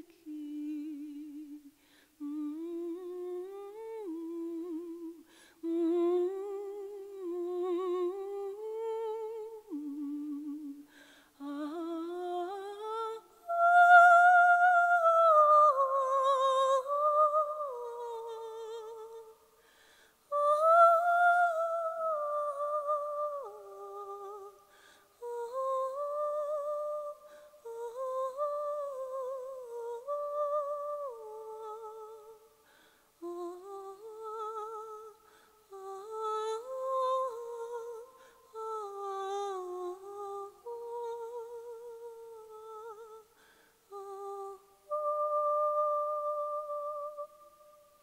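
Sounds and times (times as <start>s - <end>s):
woman singing wordless melody: 0.0s - 48.0s.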